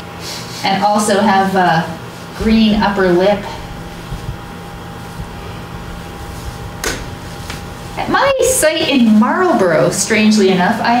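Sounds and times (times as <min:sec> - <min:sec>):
electrical hum: 0:01.1 - 0:11.0.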